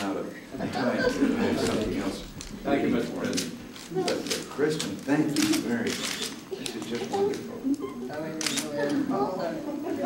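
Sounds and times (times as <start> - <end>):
camera shutter clicking: 8.4 - 8.8.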